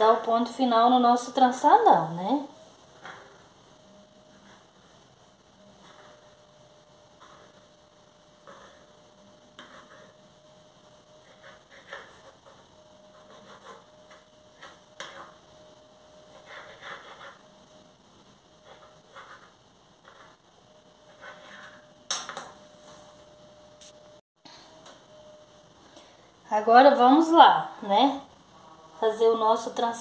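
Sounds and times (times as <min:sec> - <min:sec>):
faint steady hum: 0:00.0 - 0:30.0.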